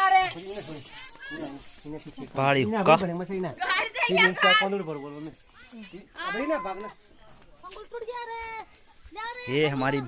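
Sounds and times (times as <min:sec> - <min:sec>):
voices talking: 0:00.0 - 0:10.0.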